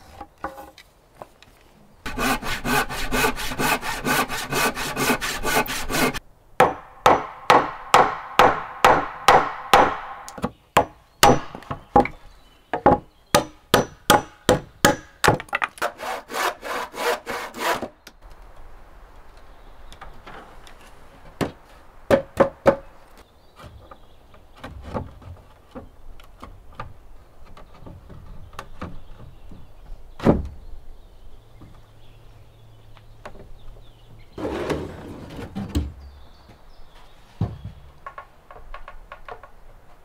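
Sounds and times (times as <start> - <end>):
hand saw cutting wood: 2.1 - 6.2, 15.8 - 17.9.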